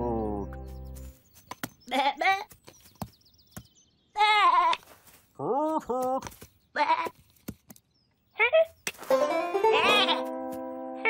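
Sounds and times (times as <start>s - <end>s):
cartoon animal bleating calls: 4.2s - 4.8s, 6.8s - 7.1s, 9.6s - 10.3s.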